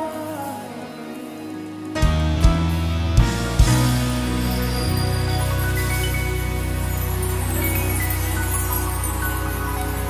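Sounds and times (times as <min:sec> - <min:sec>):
held keyboard chord: 0:00.0 - 0:10.0.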